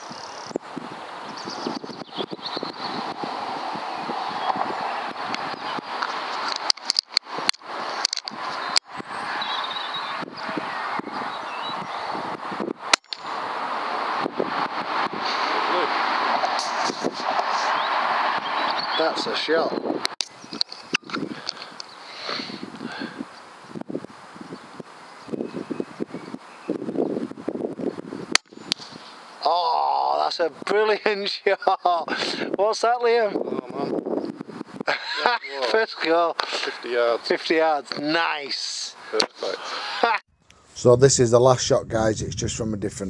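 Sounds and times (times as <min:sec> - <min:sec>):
wind on microphone: 0:00.0 - 0:29.1, 0:32.1 - 0:35.4
sharp clicks: 0:05.3 - 0:08.9, 0:12.9 - 0:13.3.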